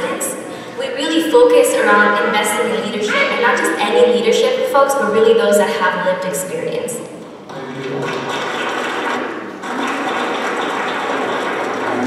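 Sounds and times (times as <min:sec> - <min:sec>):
crowd applauding: 0:07.5 - 0:12.0.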